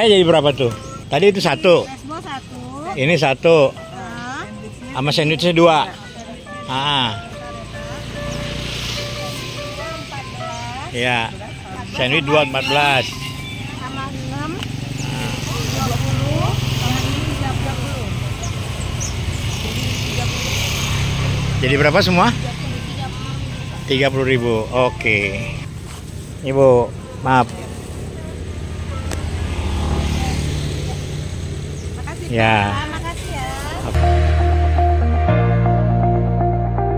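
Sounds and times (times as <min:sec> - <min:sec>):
background music: 0:00.0 - 0:16.5, 0:34.0 - 0:36.9
vehicle passing: 0:00.0 - 0:36.9.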